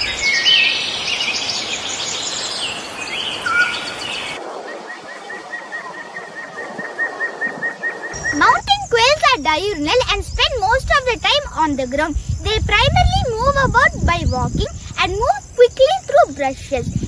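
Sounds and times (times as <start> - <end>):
birds chirping and whistling: 0.0 - 11.3, 13.4 - 16.0.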